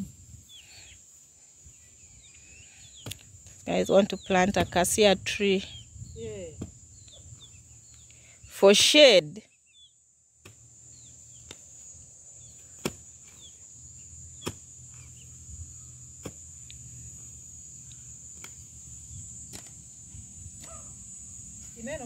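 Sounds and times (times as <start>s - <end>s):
hoe chopping into soil: 10.4s - 10.7s, 12.5s - 13.6s, 14.3s - 15.2s, 16.2s - 16.6s, 18.3s - 18.7s, 19.4s - 19.8s, 20.5s - 20.9s.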